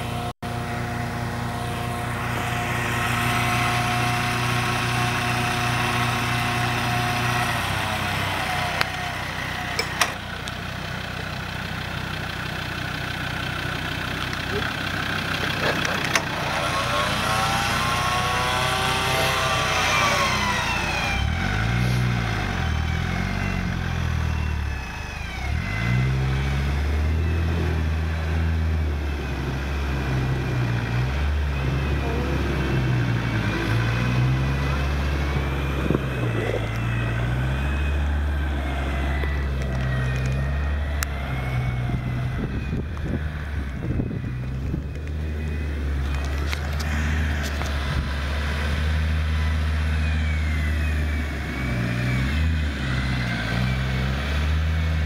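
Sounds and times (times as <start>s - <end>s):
engine idling and revving: 0.0s - 55.0s.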